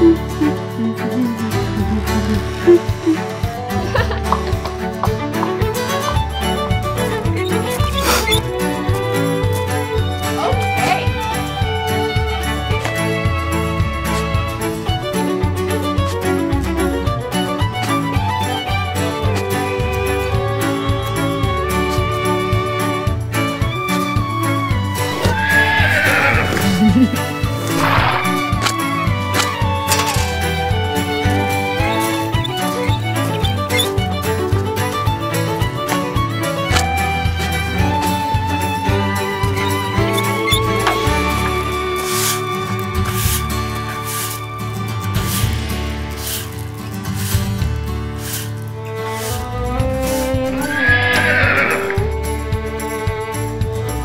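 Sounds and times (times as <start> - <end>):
light background music: 0.0 - 54.0
horse whinnying: 25.1 - 28.9, 50.4 - 52.2.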